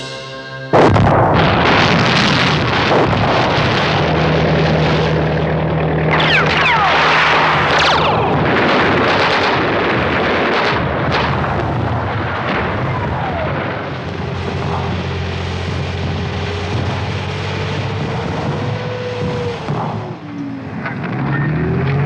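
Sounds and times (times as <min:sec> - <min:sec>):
engines droning: 0:00.0 - 0:22.0
explosions: 0:00.7 - 0:22.0
gunfire: 0:00.8 - 0:17.3
falling whistles: 0:06.1 - 0:07.3.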